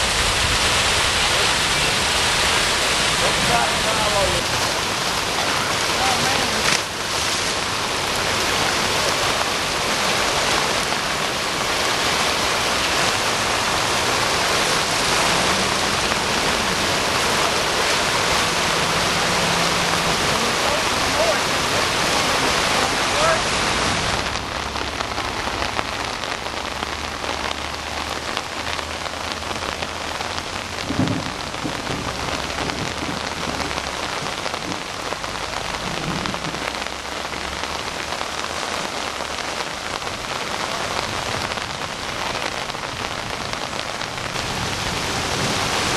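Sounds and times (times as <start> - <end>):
heavy rain: 0.0 - 45.9
rushing floodwater: 0.0 - 45.9.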